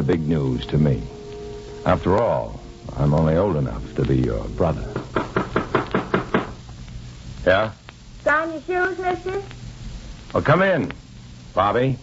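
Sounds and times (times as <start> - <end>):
knocking on wooden door: 4.9 - 6.6.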